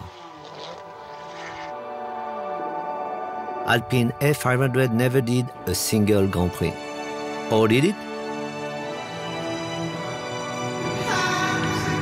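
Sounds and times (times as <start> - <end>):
ambient music: 0.0 - 12.0.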